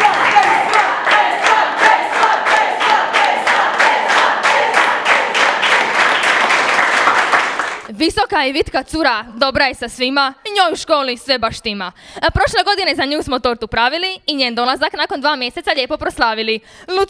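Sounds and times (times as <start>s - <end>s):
people shouting and cheering: 0.0s - 6.5s
students clapping: 0.0s - 7.9s.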